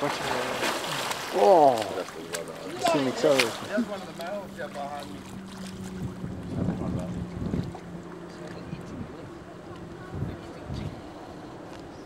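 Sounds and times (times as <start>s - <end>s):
wind buffeting microphone: 5.6s - 12.0s.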